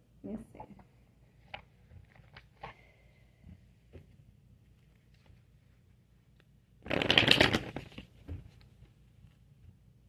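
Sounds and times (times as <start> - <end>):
cards being shuffled: 6.8 - 8.8.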